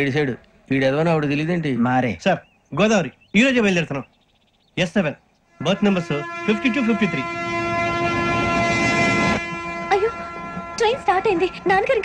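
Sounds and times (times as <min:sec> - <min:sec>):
held horn-like tone: 0:05.5 - 0:12.0
diesel train rushing: 0:05.6 - 0:12.0.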